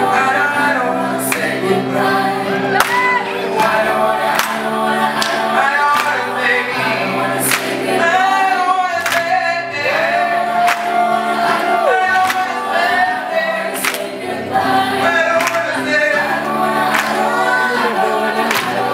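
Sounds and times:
man singing into a microphone: 0.0 - 1.4, 5.5 - 13.9, 15.0 - 16.4
sustained backing chords: 0.0 - 18.9
sharp percussive hits or claps: 4.4 - 4.6, 9.0 - 9.4, 13.8 - 14.2.

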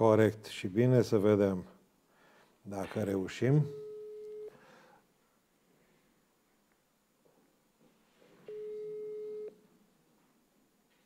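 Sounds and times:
telephone ringback tone: 3.7 - 4.5, 8.5 - 9.6.

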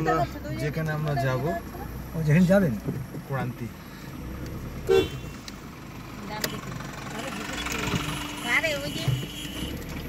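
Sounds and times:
car engine and road noise: 0.0 - 10.0
vehicle horn long note: 4.8 - 5.4.

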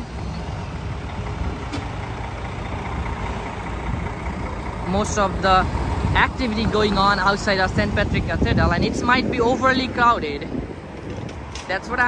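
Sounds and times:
bus engine running: 0.0 - 12.0
street traffic: 0.0 - 12.0.

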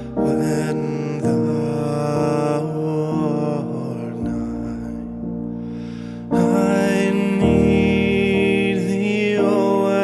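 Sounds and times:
digital piano hymn chords: 0.0 - 10.0.

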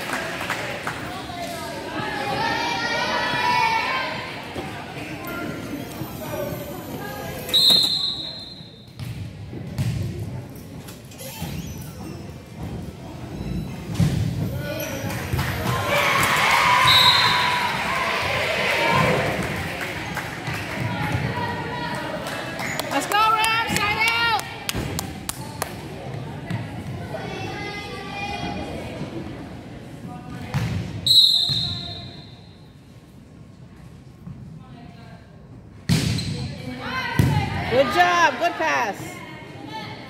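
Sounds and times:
referee's whistle: 7.5 - 8.9, 16.8 - 17.6, 31.0 - 32.4
spectators cheering and shouting: 15.6 - 19.7.

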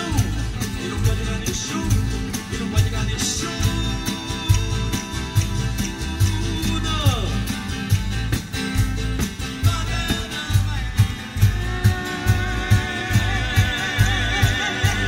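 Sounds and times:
person singing: 0.0 - 7.5, 9.5 - 15.0
steady drum beat: 0.0 - 15.0
strummed acoustic guitars: 0.0 - 15.0.

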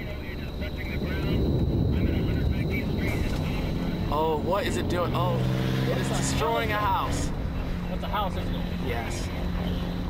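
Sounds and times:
tornado wind rushing: 0.1 - 7.6.

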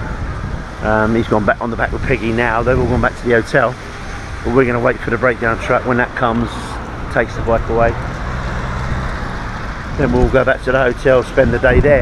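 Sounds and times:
faint engine hum: 0.0 - 12.0
road traffic rumble: 0.0 - 12.0.

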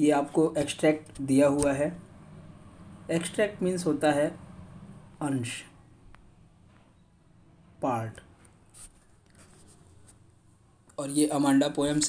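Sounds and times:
stylus tapping and scratching on screen: 8.3 - 11.0.

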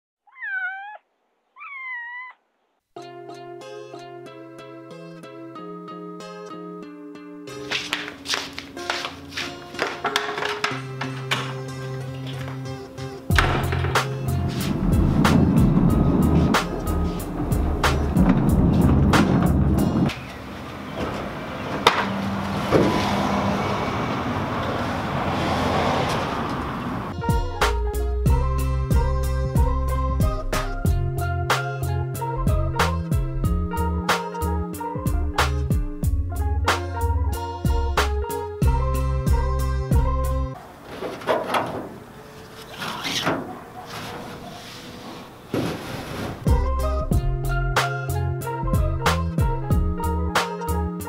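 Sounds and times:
cat meowing: 0.2 - 2.4
knocks on aluminium canoe: 13.3 - 14.1
car driving past: 14.5 - 27.2.

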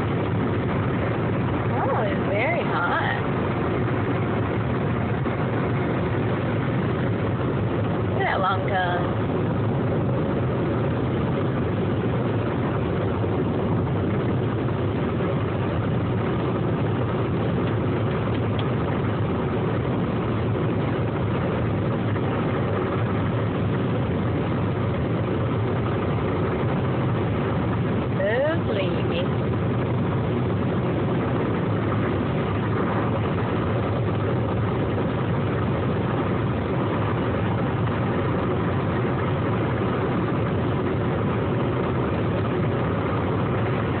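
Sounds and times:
car engine and road noise: 0.0 - 44.0.

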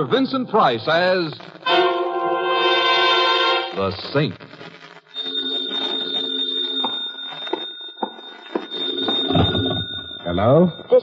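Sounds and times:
telephone bell ringing: 5.1 - 11.0.

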